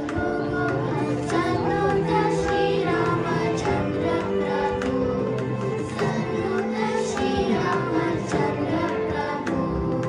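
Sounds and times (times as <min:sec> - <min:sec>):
girls singing in unison: 0:00.0 - 0:10.0.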